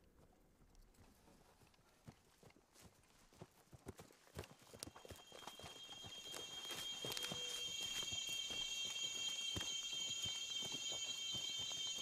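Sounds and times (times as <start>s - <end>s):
high-pitched ringing tones: 4.8s - 12.0s.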